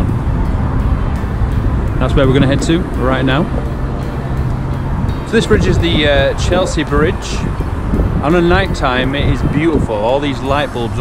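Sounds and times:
low fluttering rumble: 0.0s - 11.0s
road traffic: 0.0s - 11.0s
wind on microphone: 0.0s - 11.0s.

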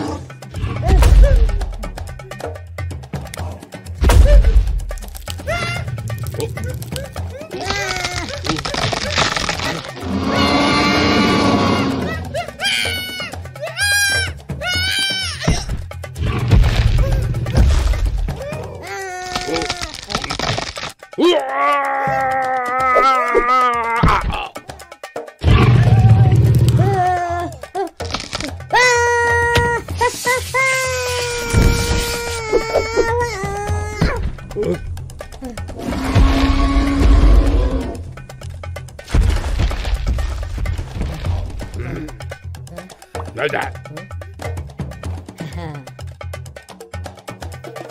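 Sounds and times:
background music: 0.0s - 47.9s
cartoon voice wailing cries: 6.9s - 9.3s, 10.3s - 15.6s, 18.4s - 20.0s, 21.2s - 24.6s, 25.8s - 27.7s, 28.7s - 34.2s.

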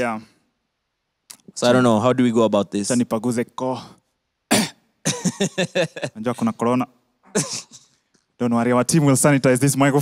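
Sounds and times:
man coughing: 4.5s - 6.2s, 7.2s - 8.0s.

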